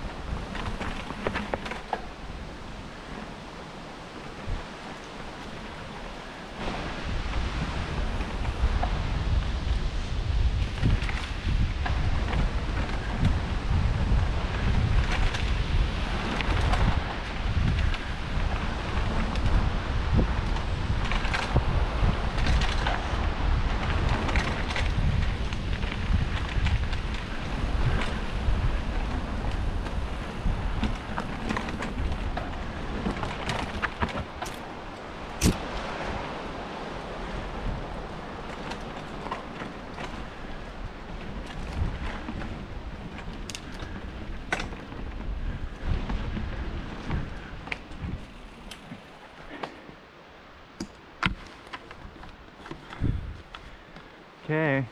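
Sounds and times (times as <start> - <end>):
bike clicks and rattles: 0.0 - 50.0, 50.6 - 54.2
tyres rolling over dirt: 0.0 - 54.8
wind buffeting microphone: 0.0 - 54.9.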